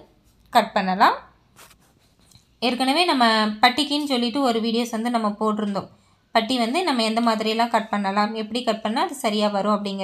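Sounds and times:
woman speaking: 0.0s - 1.4s, 2.6s - 10.0s.

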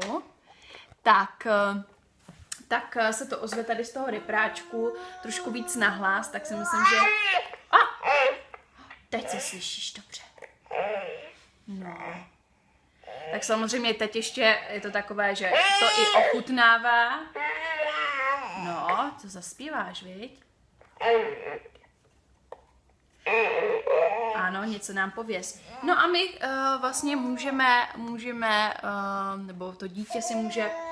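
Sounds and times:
baby crying through toy speaker: 4.1s - 8.6s, 10.7s - 11.4s, 15.5s - 16.4s, 17.4s - 18.8s, 21.0s - 21.7s, 23.2s - 24.5s, 30.1s - 30.9s
baby vocalizing: 10.4s - 12.3s, 17.4s - 19.0s, 20.8s - 21.8s, 23.2s - 24.5s.

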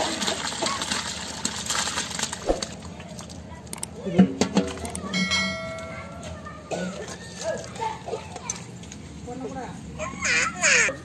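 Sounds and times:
children and adults chattering: 2.8s - 11.0s
bell-like chime: 5.1s - 6.6s.

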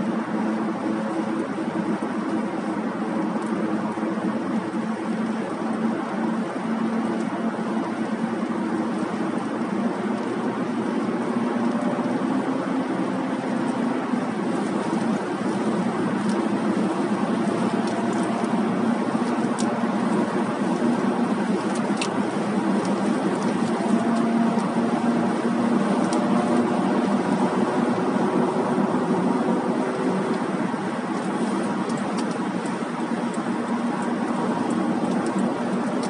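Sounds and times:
car road and engine noise: 0.0s - 36.0s.

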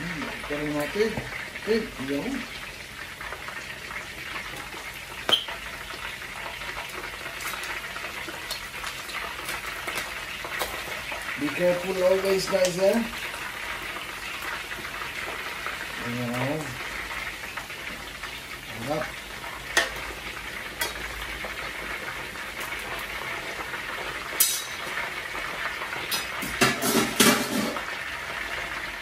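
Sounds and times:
oil sizzling and bubbling: 0.0s - 29.0s.

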